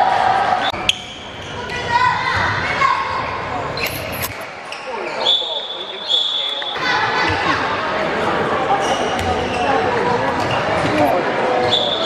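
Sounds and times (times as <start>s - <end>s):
referee whistle blasts: 5.2s - 6.8s
ball bouncing in a hall: 6.5s - 7.8s, 8.7s - 12.0s.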